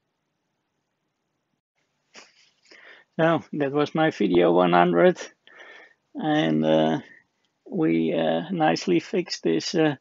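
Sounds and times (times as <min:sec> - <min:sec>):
faint breaths: 0:02.1 - 0:03.2, 0:05.3 - 0:06.2.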